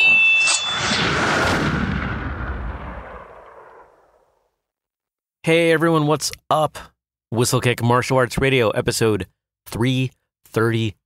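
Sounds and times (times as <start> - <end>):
boom with rushing tail: 0.8 - 4.4.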